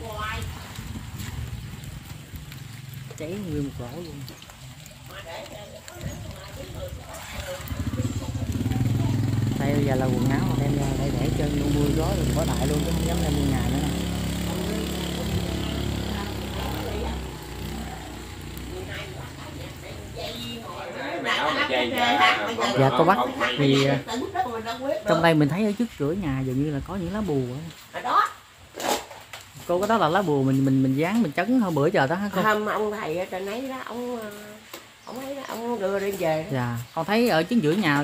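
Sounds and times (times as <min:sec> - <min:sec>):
vehicle engine running: 0:07.2 - 0:20.5.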